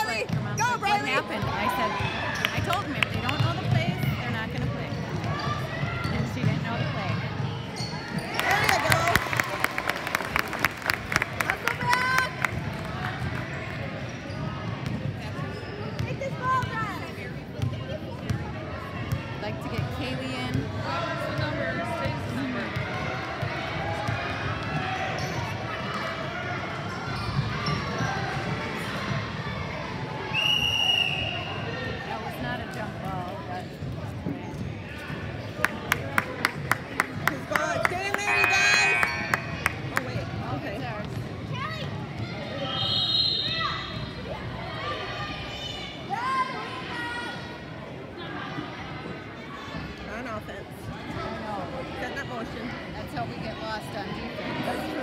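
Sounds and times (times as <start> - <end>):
referee's whistle: 30.3 - 31.7, 42.6 - 44.0.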